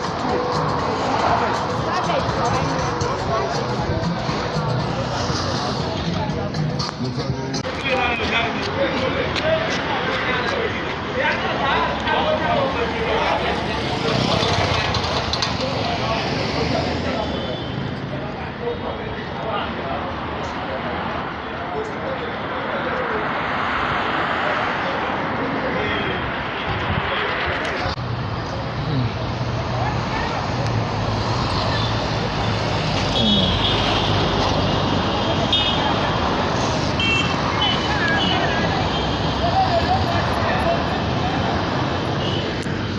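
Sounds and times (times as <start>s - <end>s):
indistinct voices talking: 0.0s - 42.9s
outdoor street noise: 0.0s - 42.9s.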